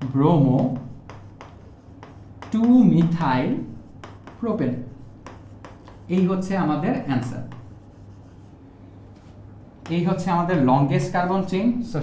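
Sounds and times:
stylus tapping and scratching glass: 0.6s - 4.4s
man talking: 6.1s - 7.5s, 9.9s - 12.0s.

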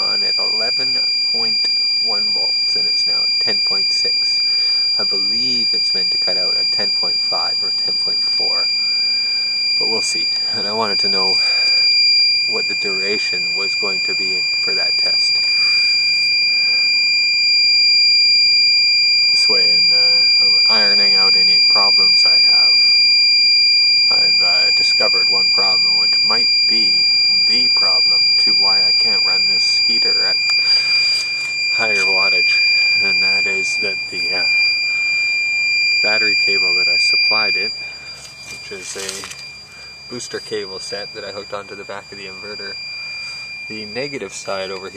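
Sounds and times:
high-pitched alarm tone: 0.0s - 44.9s.

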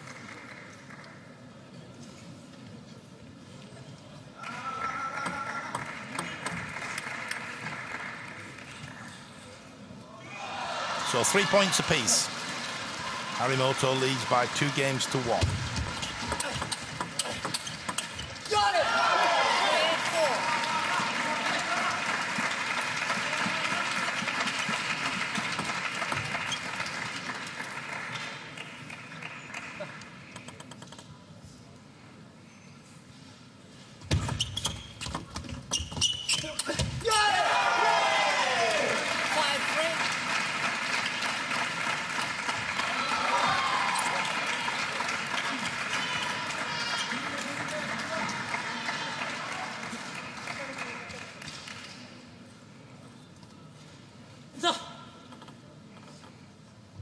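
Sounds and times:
crowd cheering: 10.2s - 17.2s, 18.4s - 26.5s, 37.0s - 50.6s.

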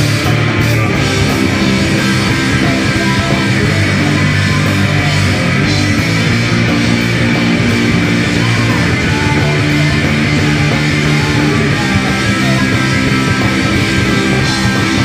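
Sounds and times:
drum kit: 0.0s - 15.0s
electric bass: 0.0s - 15.0s
electric guitar: 0.0s - 15.0s.

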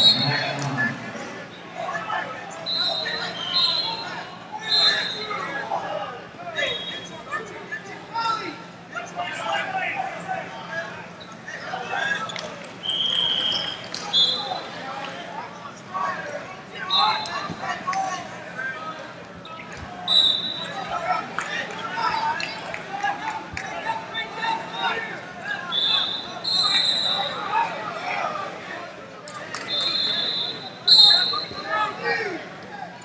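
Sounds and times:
indistinct shouting and chatter: 0.0s - 33.0s
referee whistle blasts: 12.8s - 14.5s, 20.1s - 20.8s, 25.7s - 27.4s, 29.6s - 31.7s.

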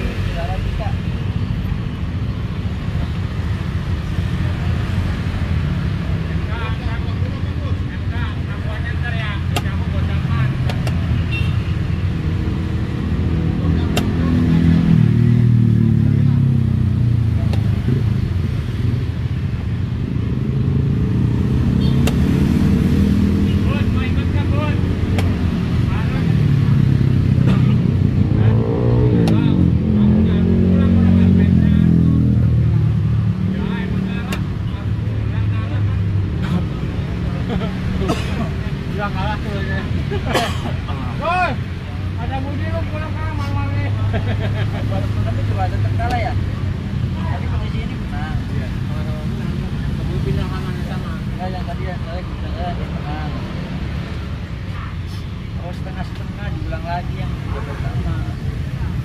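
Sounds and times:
vehicle engines passing: 0.0s - 59.0s
engine revving: 12.2s - 19.1s, 20.2s - 37.2s.

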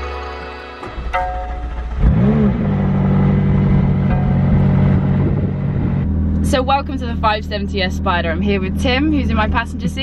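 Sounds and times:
car engine idling: 0.8s - 10.0s
car engine starting and revving: 0.8s - 10.0s.

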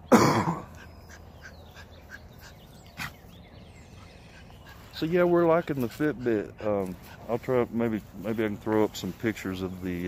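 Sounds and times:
loud cough: 0.1s - 0.8s.

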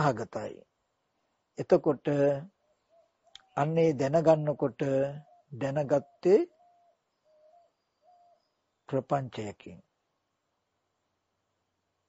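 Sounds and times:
man speaking: 0.0s - 0.6s, 1.6s - 2.5s, 3.4s - 6.5s, 8.9s - 9.8s
faint steady tone: 0.0s - 12.0s.

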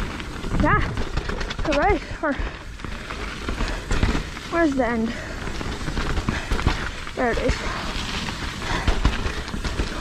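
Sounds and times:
bike tyres rolling over dirt and rocks: 0.0s - 10.0s.

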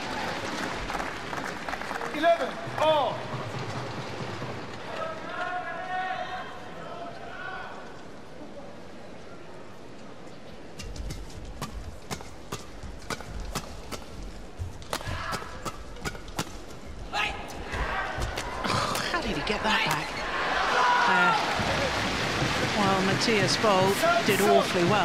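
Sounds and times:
crowd cheering and shouting: 17.2s - 18.8s, 19.4s - 25.0s.

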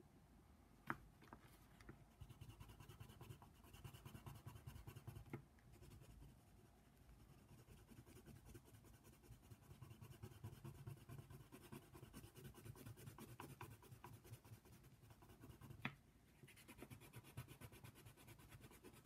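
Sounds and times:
pencil scratching on paper: 2.2s - 15.8s, 16.4s - 19.0s.

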